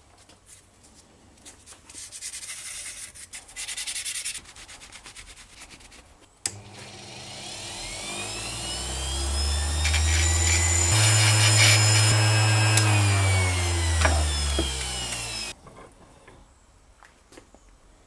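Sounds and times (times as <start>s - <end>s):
power tool motor humming: 6.5s - 15.6s.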